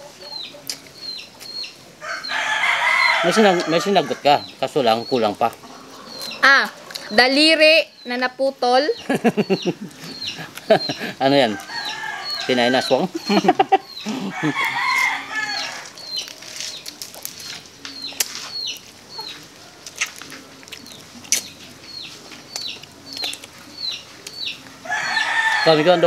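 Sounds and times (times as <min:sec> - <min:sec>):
chicks peeping: 0:00.0 - 0:26.0
rooster crowing: 0:02.0 - 0:04.4, 0:10.3 - 0:16.0, 0:24.8 - 0:26.0.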